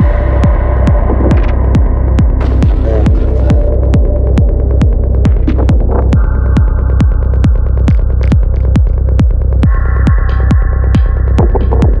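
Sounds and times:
deep bass: 0.0 - 12.0
psytrance kick drum: 0.0 - 12.0.

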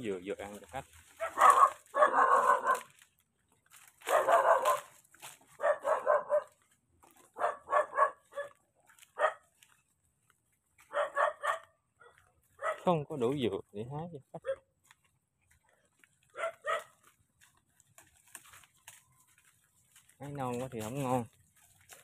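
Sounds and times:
dog barking: 1.1 - 2.9, 4.0 - 6.6, 7.3 - 9.5, 10.8 - 12.9, 14.4 - 14.7, 16.3 - 17.0.

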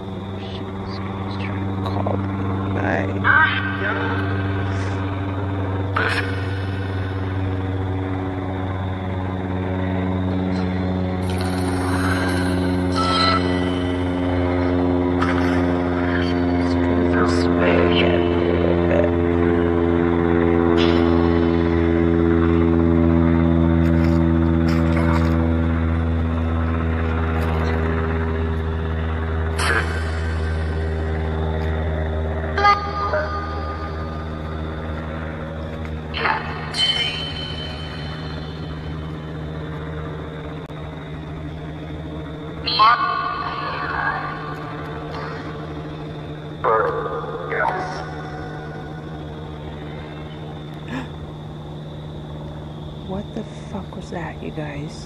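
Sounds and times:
radio static with voice fragments: 0.0 - 5.1, 42.6 - 45.5
low droning hum: 0.0 - 55.0
loud blips: 36.1 - 40.3.

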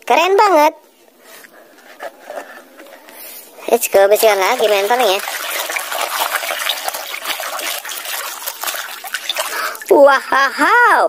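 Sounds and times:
hand scrubbing toy mask: 1.4 - 10.0
water sloshing in plastic basin: 2.0 - 10.4
water dripping: 2.8 - 10.6.

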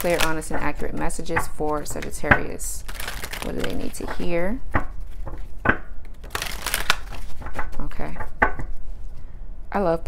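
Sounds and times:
cards rustling while shuffled: 0.0 - 8.3
cards slapping: 2.9 - 4.2, 4.8 - 7.8.

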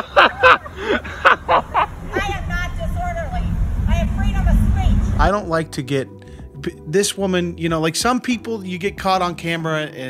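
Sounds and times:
low rumble of traffic: 0.4 - 5.8.

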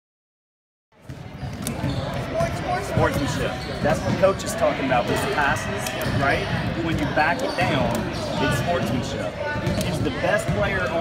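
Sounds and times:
basketballs bouncing on wood floor: 1.0 - 4.5, 6.0 - 11.0
voices talking: 1.4 - 11.0.

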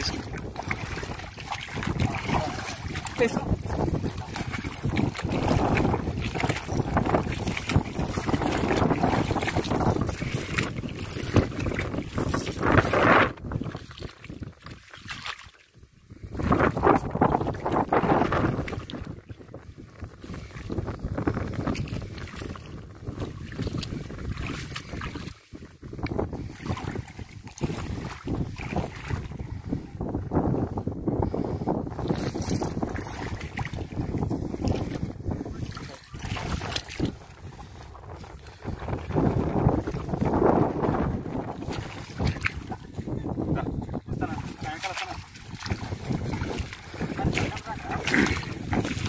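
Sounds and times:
wind buffeting microphone: 0.0 - 14.8, 15.8 - 49.0.

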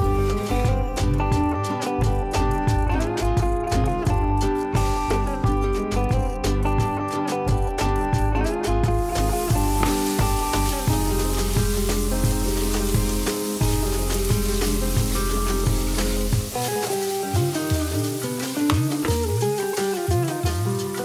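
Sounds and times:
frying pan being shaken: 9.0 - 21.0
potatoes sizzling in hot oil: 9.0 - 21.0.

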